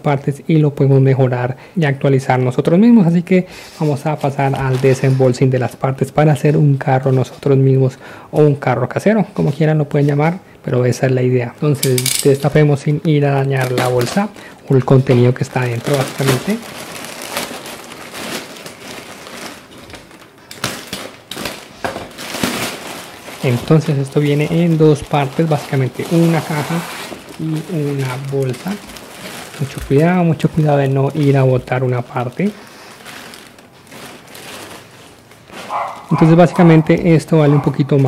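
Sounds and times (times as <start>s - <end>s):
plastic bag rustling and crinkling: 2.7s - 7.8s, 11.6s - 38.0s.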